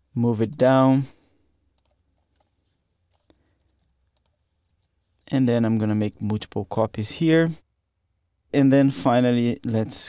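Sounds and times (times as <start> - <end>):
computer keyboard clicks: 1.8 - 2.5, 3.1 - 4.9.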